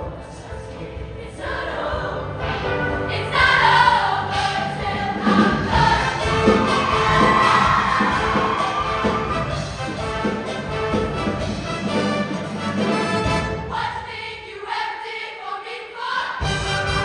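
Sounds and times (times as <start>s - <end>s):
women's choir singing: 0.0s - 9.4s, 13.6s - 16.6s
live band playing: 2.4s - 13.8s, 16.4s - 17.0s.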